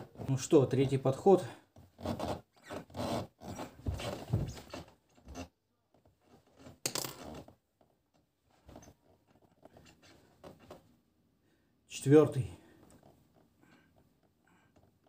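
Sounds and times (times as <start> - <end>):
body rubbing on wooden floor: 2.0 - 5.4.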